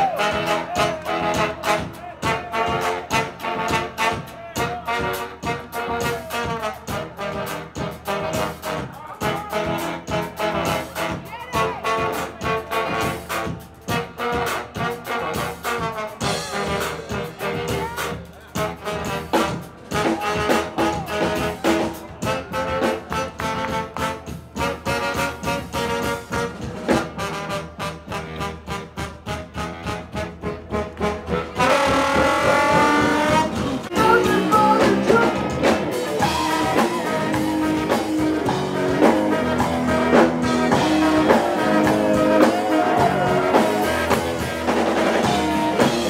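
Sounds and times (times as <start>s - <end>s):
funk jazz band playing: 0.0s - 46.0s.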